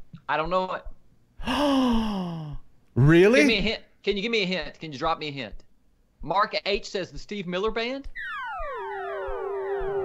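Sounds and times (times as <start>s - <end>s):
synthesized falling tone: 8.2s - 10.0s.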